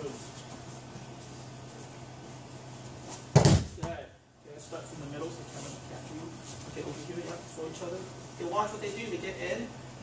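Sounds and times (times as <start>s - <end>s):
child landing on foam mat: 3.3s - 4.0s.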